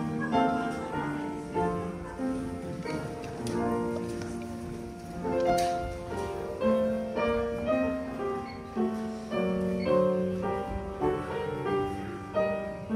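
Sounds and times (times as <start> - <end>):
slow piano music: 0.0 - 12.9.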